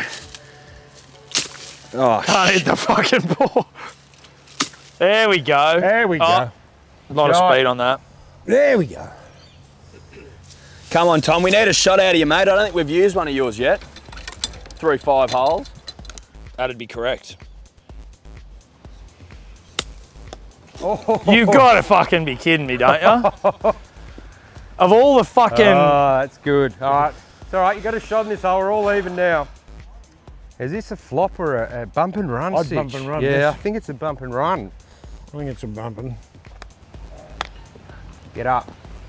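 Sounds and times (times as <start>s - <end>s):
background music with low beat: 0.0s - 3.8s, 11.0s - 39.0s
golf club swish and strike: 19.6s - 20.6s.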